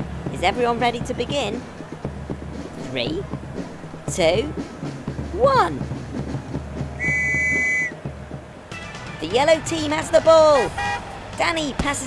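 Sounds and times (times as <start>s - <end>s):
referee's whistle blast: 7.0s - 7.9s.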